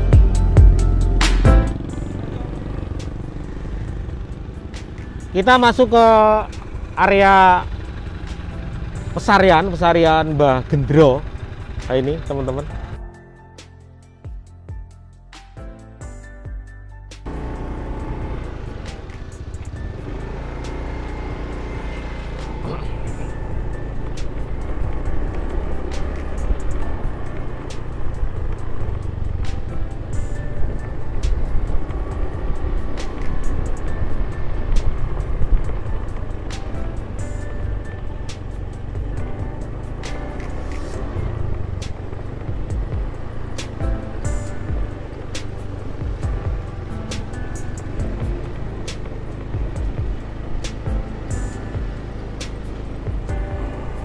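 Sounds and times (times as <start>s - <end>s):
motorbike engine: 0.0s - 13.1s, 17.2s - 54.0s
background music: 0.0s - 54.0s.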